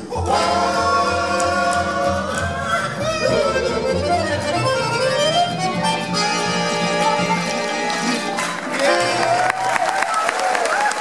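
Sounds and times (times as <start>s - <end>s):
men singing harmony: 0.0s - 4.4s
upright bass: 0.0s - 9.3s
accordion: 0.0s - 9.4s
acoustic guitar: 0.0s - 9.4s.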